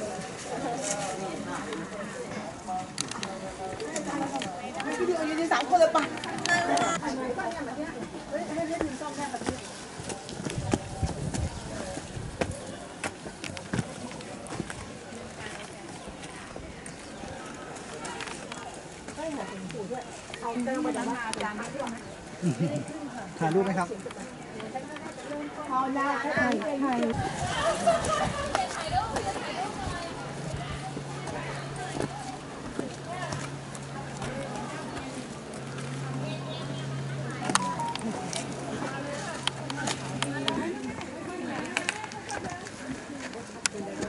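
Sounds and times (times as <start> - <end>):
faint voices talking: 0.0 - 44.0
footsteps on concrete steps: 1.8 - 22.0, 25.8 - 36.2, 38.0 - 44.0.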